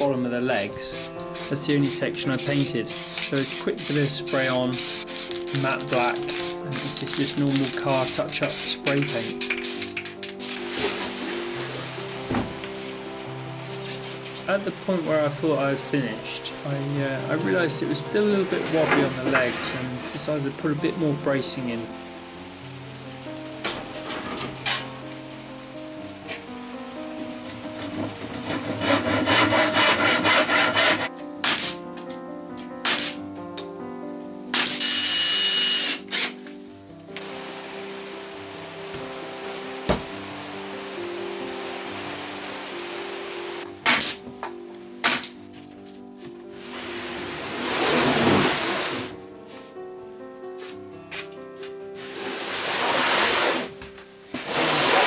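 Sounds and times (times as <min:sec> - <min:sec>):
background music: 0:00.0 - 0:55.0
cordless drill running: 0:34.6 - 0:36.3.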